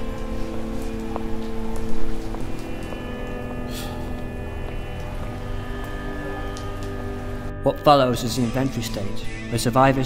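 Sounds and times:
footsteps crunching on gravel: 0.0 - 7.3
steady music drone: 0.0 - 10.0.

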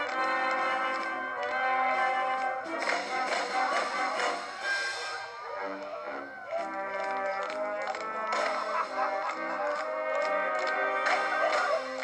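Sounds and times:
orchestral dance music with brass: 0.0 - 12.0.

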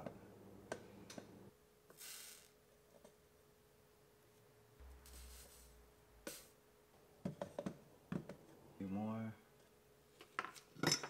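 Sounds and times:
faint steady hum: 0.0 - 11.0
soft hisses: 1.9 - 2.6, 4.8 - 6.6.

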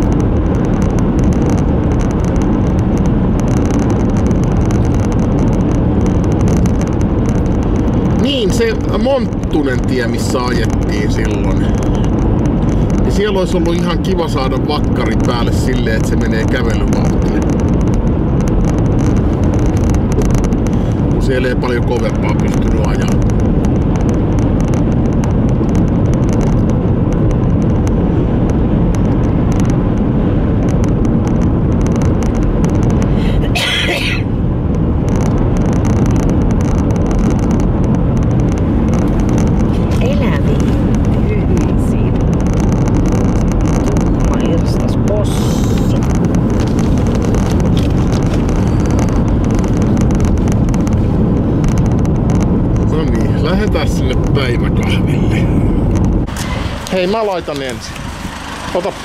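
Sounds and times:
car road and engine noise: 0.0 - 59.0.

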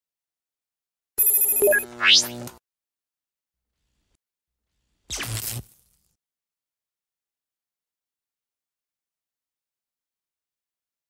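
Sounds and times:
quick electronic blips: 1.2 - 2.6.

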